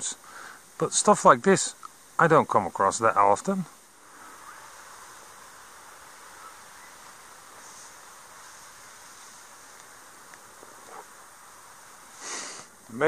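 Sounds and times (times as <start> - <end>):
outdoor background hiss: 0.0 - 13.0
light ticks and rustles: 4.3 - 11.4.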